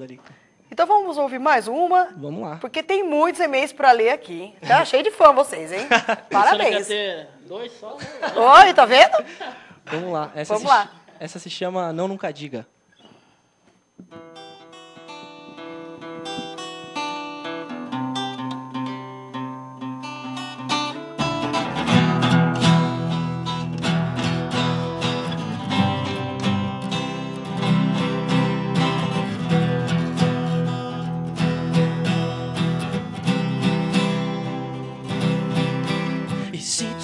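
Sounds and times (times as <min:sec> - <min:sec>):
acoustic guitars playing: 0:14.0 - 0:37.0.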